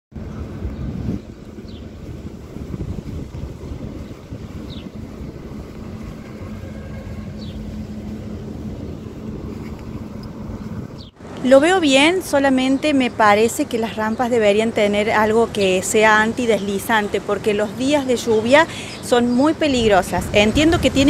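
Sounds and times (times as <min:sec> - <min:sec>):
traffic noise: 0:00.1 - 0:21.0
wind buffeting microphone: 0:00.1 - 0:21.0.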